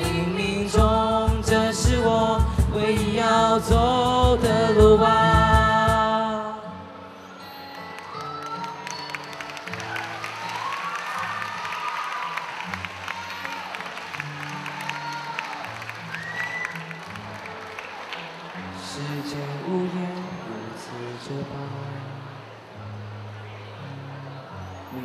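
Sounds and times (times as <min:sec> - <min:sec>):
acoustic guitar and cajon playing: 0:00.0 - 0:06.5, 0:07.5 - 0:21.4
audience clapping and cheering: 0:07.7 - 0:19.1.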